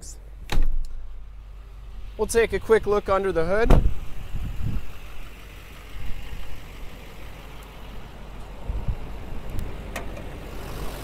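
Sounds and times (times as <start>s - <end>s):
diesel engine idling: 0.0s - 11.0s
low thumps: 3.6s - 4.9s.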